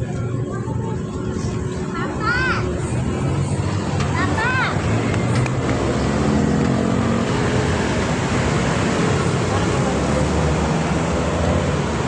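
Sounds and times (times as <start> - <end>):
people's voices: 0.0 - 7.1, 8.7 - 11.8
traffic noise: 0.0 - 12.0.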